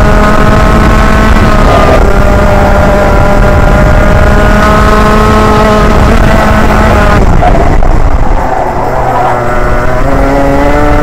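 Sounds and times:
kart engine at high revs: 0.0s - 11.0s.

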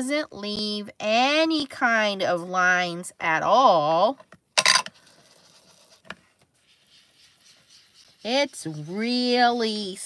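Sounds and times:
foam tool rubbing on cardstock: 5.0s - 10.0s.

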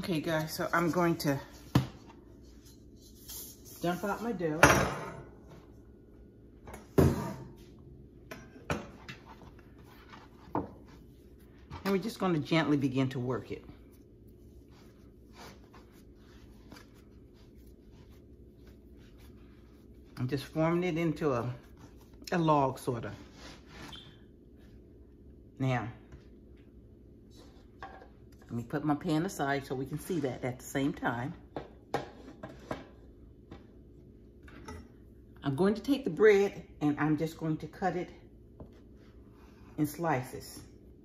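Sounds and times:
low steady background hum: 0.0s - 41.0s.

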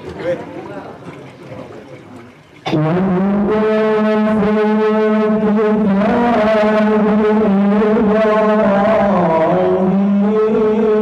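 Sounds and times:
man reciting melodically into microphone: 2.7s - 11.0s.

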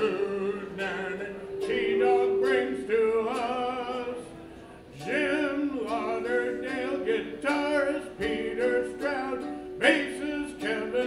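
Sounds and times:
men singing with vibrato: 0.0s - 11.0s.

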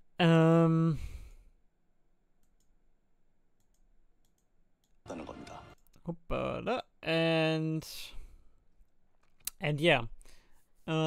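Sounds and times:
computer mouse clicks: 2.4s - 2.8s, 3.6s - 5.0s.

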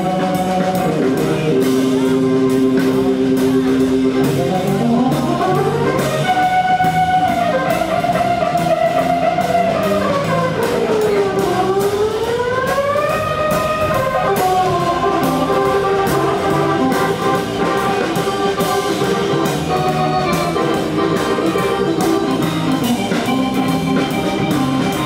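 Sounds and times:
blues band playing: 0.0s - 25.0s
electric guitar lead line sliding: 0.0s - 25.0s.

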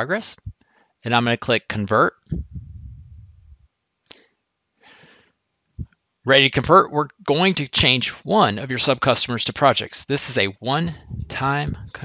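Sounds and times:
faint low rumble: 0.2s - 0.6s, 2.2s - 3.7s, 10.8s - 12.0s.

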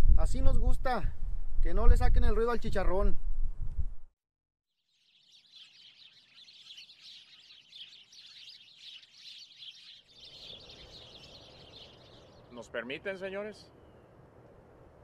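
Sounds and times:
chorus of high chirping: 4.9s - 12.8s
low outdoor background noise: 5.1s - 15.0s.

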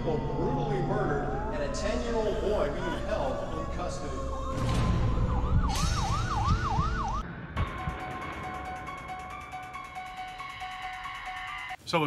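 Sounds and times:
police siren yelping: 0.0s - 7.2s
film score held tones: 0.0s - 12.0s.

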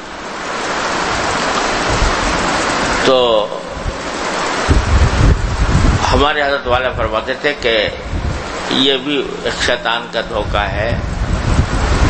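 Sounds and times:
loud steady hiss: 0.0s - 12.0s.

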